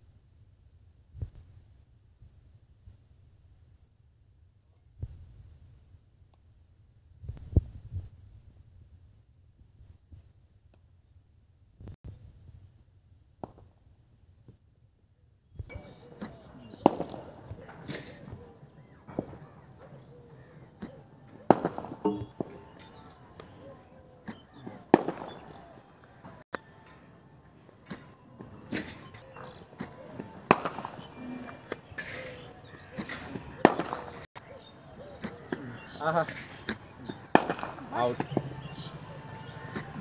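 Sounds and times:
cricket bat striking balls: 15.9s - 20.0s, 20.8s - 23.2s, 24.2s - 25.8s, 27.9s - 34.2s, 36.3s - 38.6s.

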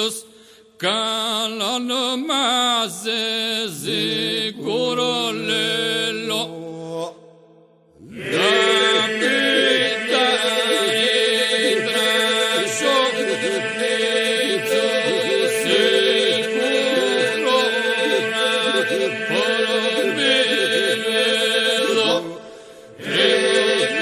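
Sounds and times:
vocal group singing polyphony: 3.0s - 7.2s, 8.0s - 24.0s.

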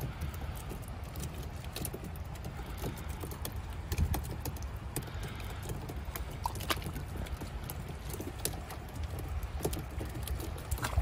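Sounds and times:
fish flapping against hull: 0.0s - 11.0s.

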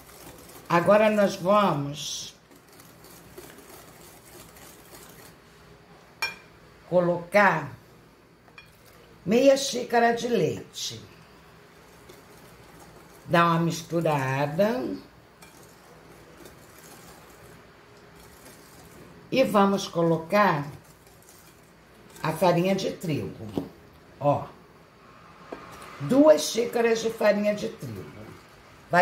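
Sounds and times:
whisk beating batter in glass bowl: 0.0s - 5.4s, 11.6s - 23.0s.

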